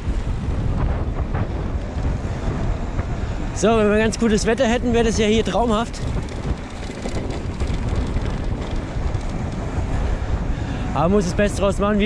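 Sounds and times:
wind buffeting microphone: 0:00.0 - 0:12.0
tyres rumbling over paving: 0:00.2 - 0:12.0.

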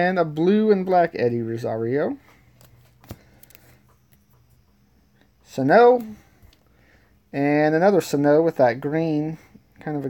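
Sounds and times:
cards rustling: 0:02.3 - 0:04.5.

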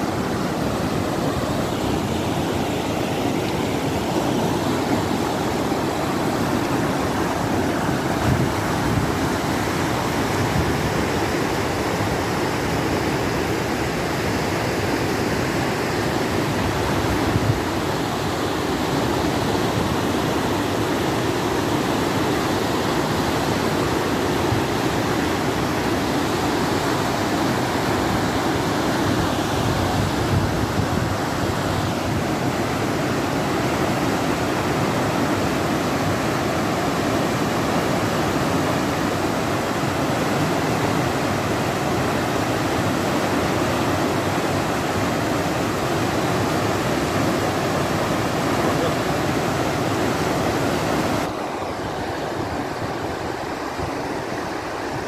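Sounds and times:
water rushing down a canal: 0:00.0 - 0:55.0.

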